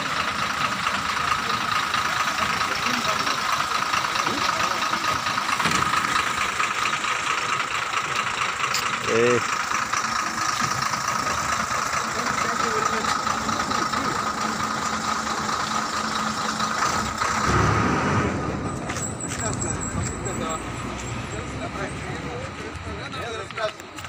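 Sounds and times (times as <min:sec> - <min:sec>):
heavy vehicle engine idling: 0:00.0 - 0:24.0
high engine whine: 0:00.0 - 0:24.0
voices: 0:00.0 - 0:24.0
loud low rumble: 0:16.9 - 0:22.6.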